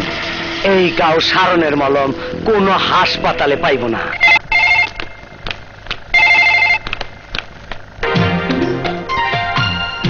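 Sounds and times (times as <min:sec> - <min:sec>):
telephone ringing: 0:03.3 - 0:05.4, 0:06.1 - 0:07.3.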